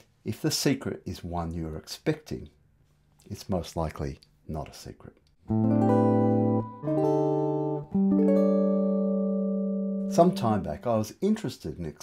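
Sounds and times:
guitar chords ringing: 5.5 - 10.7.

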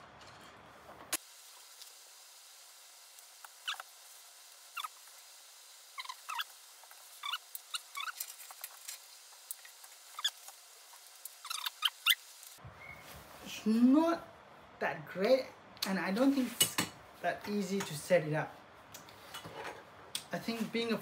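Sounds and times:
straps squeaking through buckles: 7.2 - 8.4, 11.4 - 12.2.

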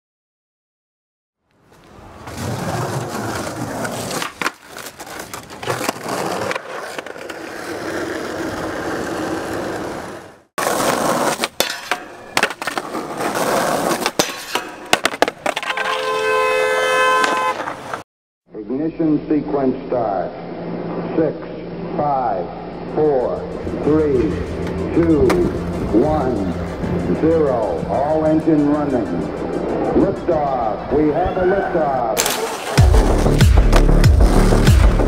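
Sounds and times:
skateboard wheels rolling on concrete: 1.5 - 18.0, 32.2 - 35.0
skateboard clacking on ground: 10.6 - 16.2, 17.2 - 18.0
steady pitched tone: 18.6 - 32.2.

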